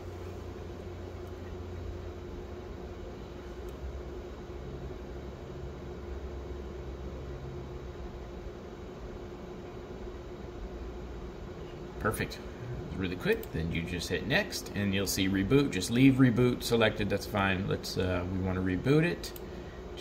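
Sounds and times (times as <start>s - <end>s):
fan hum and hiss: 0.0s - 20.0s.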